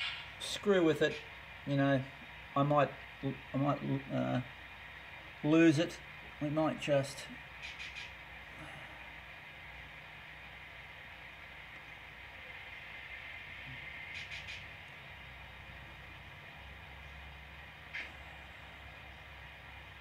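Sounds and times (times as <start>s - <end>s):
steady background hiss: 0.0s - 20.0s.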